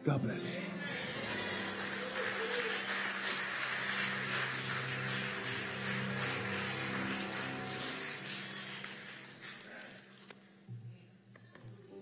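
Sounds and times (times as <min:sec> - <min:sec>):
soft instrumental music: 0:00.0 - 0:12.0
congregation applauding: 0:00.6 - 0:10.5.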